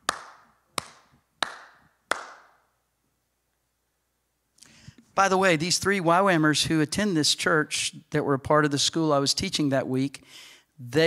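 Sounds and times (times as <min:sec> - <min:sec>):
slow hand claps: 0:00.0 - 0:02.6.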